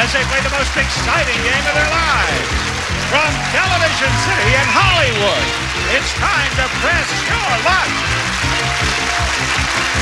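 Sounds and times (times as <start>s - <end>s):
audience applauding: 0.0s - 10.0s
game show theme music: 0.0s - 10.0s.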